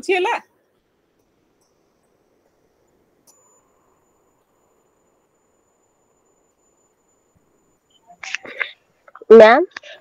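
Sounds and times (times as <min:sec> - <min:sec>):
woman speaking: 0:00.0 - 0:00.4, 0:08.2 - 0:10.0
microphone clicks and rustle: 0:08.2 - 0:10.0.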